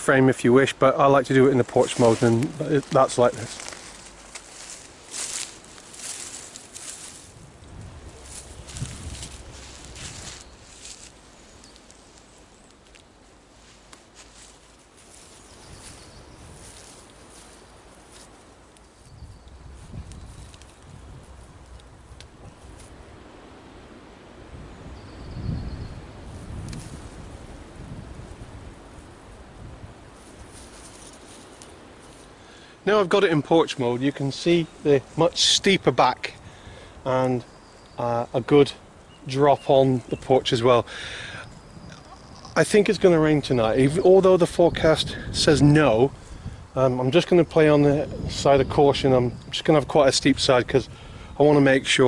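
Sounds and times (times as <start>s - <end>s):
low rumbles: 1.1s - 12.6s, 18.7s - 30.1s
footsteps through grass and leaves: 1.2s - 23.5s, 26.0s - 36.2s.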